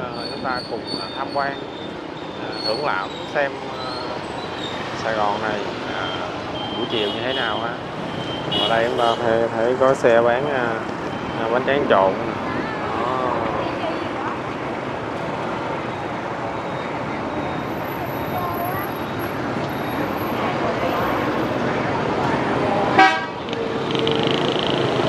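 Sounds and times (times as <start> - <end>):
motorbike and car traffic: 0.0 - 25.0
sharp loud horn beep: 8.2 - 9.2, 22.9 - 24.2
faint voices: 8.7 - 25.0.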